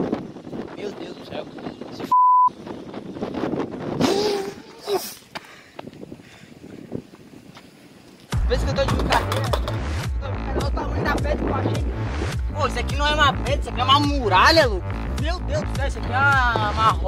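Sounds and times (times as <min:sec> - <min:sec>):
wind on microphone: 0:00.0 - 0:08.0, 0:10.2 - 0:14.2
censor bleep: 0:02.1 - 0:02.5.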